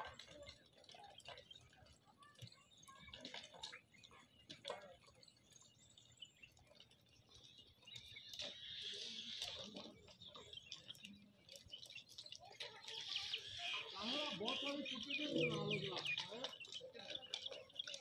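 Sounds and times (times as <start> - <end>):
birds chirping: 0.1 - 18.0.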